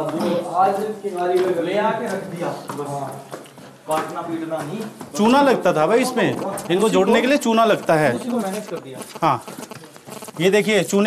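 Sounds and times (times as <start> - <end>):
man speaking: 5.2 - 11.0.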